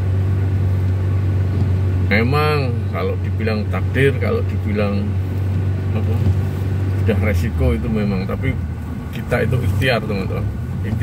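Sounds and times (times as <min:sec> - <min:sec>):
car engine and tyres on wet road: 0:00.0 - 0:11.0.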